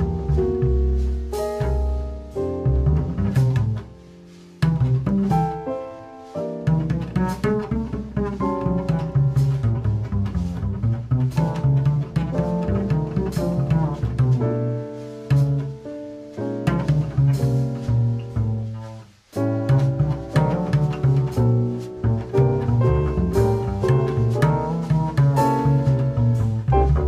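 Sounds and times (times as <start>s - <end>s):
drums: 0.0s - 27.0s
piano chords: 0.0s - 27.0s
plucked upright double bass: 0.0s - 27.0s.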